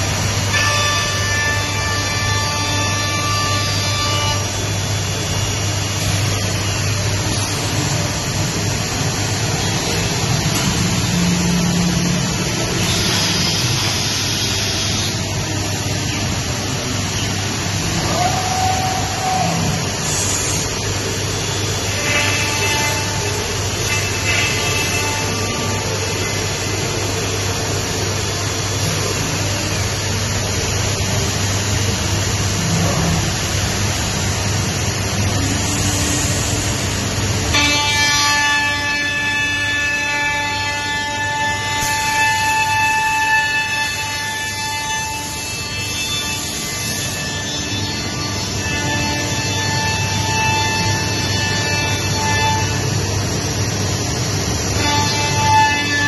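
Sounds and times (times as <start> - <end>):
machining head rushing noise: 1.4 - 37.6.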